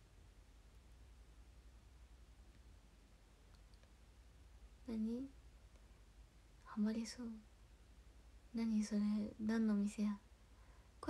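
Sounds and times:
faint clicks: 0:03.4 - 0:04.0
woman's voice: 0:04.9 - 0:05.3, 0:06.7 - 0:07.4, 0:08.6 - 0:10.2.

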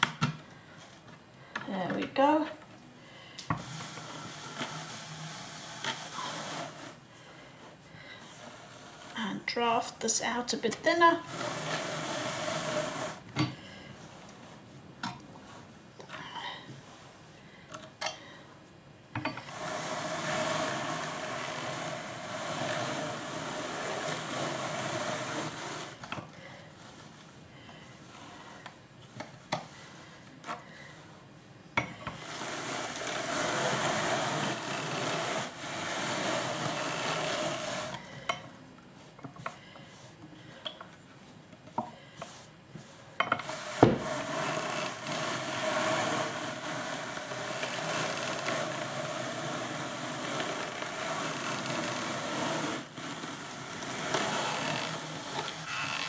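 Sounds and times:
drum carder rasping whirr: 0:03.5 - 0:07.0, 0:19.4 - 0:26.2, 0:32.2 - 0:38.2, 0:43.4 - 0:56.0.

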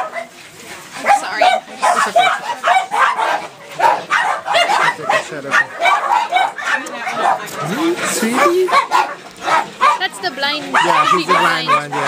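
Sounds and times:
small dogs yapping: 0:00.0 - 0:00.4, 0:01.0 - 0:12.0.

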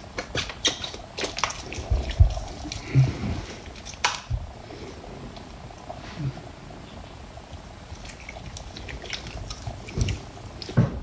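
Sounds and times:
soapy hands rubbing: 0:00.0 - 0:04.8, 0:07.8 - 0:10.8.

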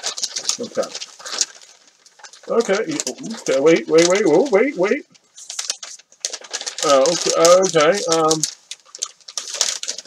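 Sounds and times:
paper wrapping crinkling: 0:00.0 - 0:10.0.

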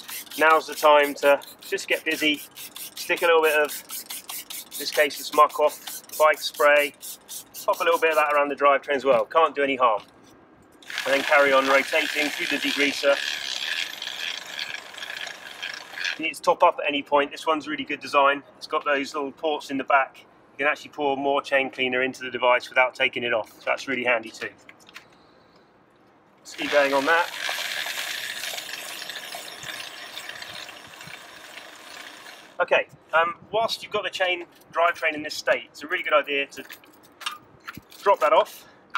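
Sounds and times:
bike chain swishing rattle: 0:00.0 - 0:08.4, 0:10.8 - 0:16.3, 0:26.5 - 0:32.6
freewheel ratchet ticking: 0:10.8 - 0:16.2.

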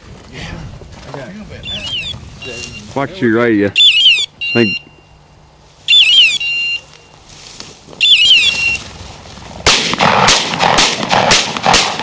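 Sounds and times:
electronic collar beeps: 0:01.6 - 0:02.9, 0:03.8 - 0:05.2, 0:05.9 - 0:07.2, 0:08.0 - 0:08.8
sharp cracks: 0:08.0 - 0:12.0.

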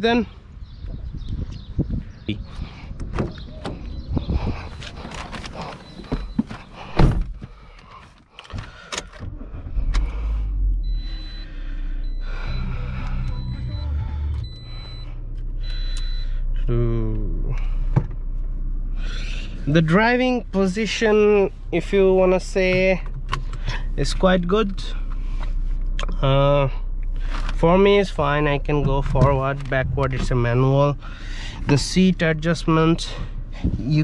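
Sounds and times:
car engine starting and idling: 0:02.7 - 0:34.0
car door shutting: 0:04.8 - 0:07.8, 0:17.6 - 0:18.2, 0:28.8 - 0:30.8.

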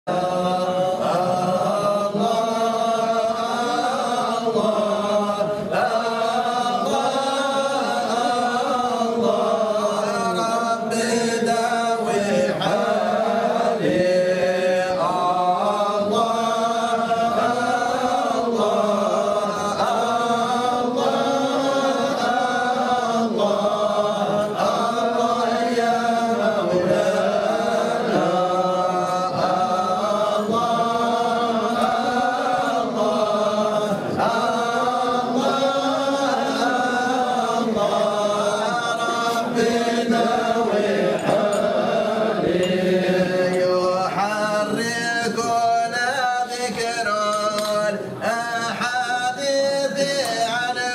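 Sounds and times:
men chanting together: 0:00.0 - 0:50.9.

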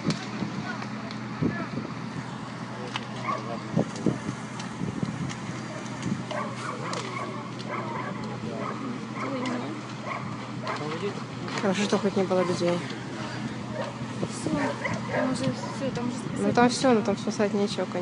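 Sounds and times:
fire crackling and popping: 0:00.0 - 0:18.0
steady low hum: 0:00.0 - 0:18.0
dog barking: 0:03.2 - 0:03.5, 0:05.7 - 0:10.9, 0:14.6 - 0:15.8
people talking: 0:10.7 - 0:13.5, 0:14.2 - 0:18.0.

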